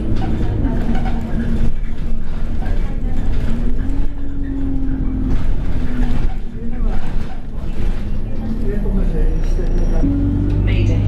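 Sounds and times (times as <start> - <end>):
bus engine and road rumble: 0.0 - 11.0
drivetrain whine: 3.0 - 11.0.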